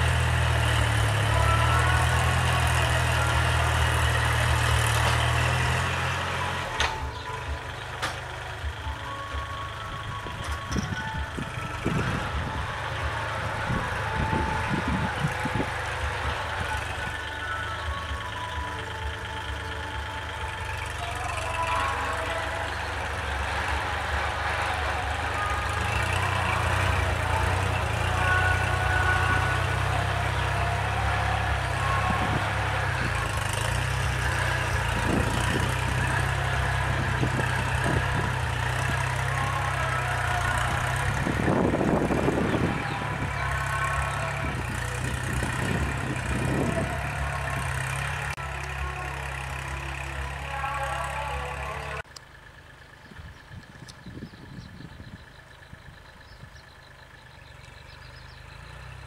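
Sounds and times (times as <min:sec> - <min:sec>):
tractor diesel engine under load: 0:00.0 - 0:59.0
rotary tiller churning soil: 0:20.1 - 0:51.9.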